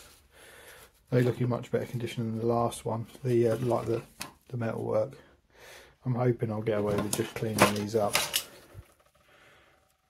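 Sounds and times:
man speaking: 1.1 - 5.2, 6.0 - 8.3.

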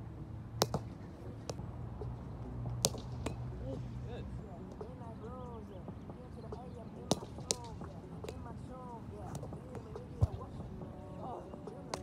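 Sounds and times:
ball slaps: 0.6 - 1.6, 2.7 - 3.5, 7.0 - 8.5, 9.2 - 10.5
faint ball taps: 0.6 - 2.1, 2.7 - 3.6, 6.5 - 10.6
voices: 3.2 - 12.0.

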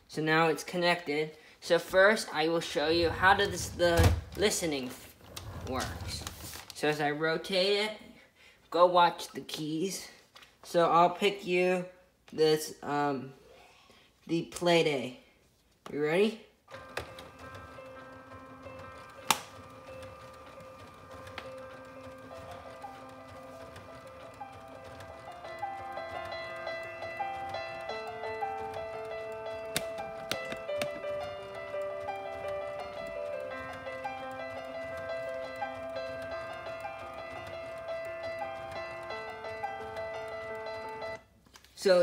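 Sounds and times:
solo piano music on speaker: 16.7 - 41.2.

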